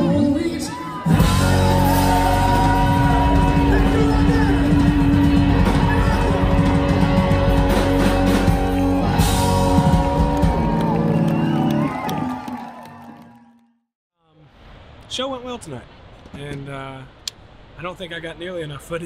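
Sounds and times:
live rock band with vocals: 0:00.0 - 0:10.8.

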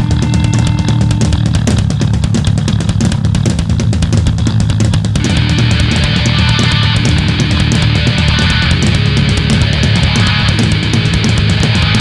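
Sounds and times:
bass guitar: 0:00.0 - 0:12.0
distorted electric guitar: 0:00.0 - 0:12.0
fast drumming with cymbals: 0:00.0 - 0:12.0.

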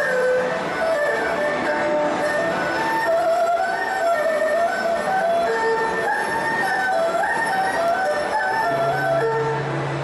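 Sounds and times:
erhu melody: 0:00.0 - 0:10.0
rough bow noise: 0:00.0 - 0:10.0.

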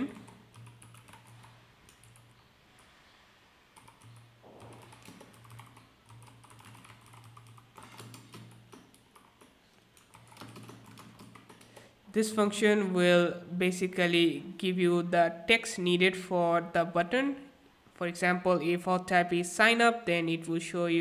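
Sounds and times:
computer keyboard typing: 0:00.0 - 0:02.4, 0:03.7 - 0:11.9.

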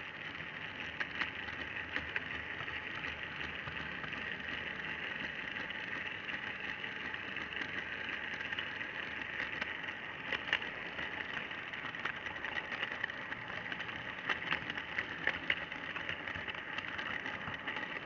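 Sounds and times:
model train motor whirring: 0:00.0 - 0:18.0
wheels clicking over rail joints: 0:00.0 - 0:18.0.

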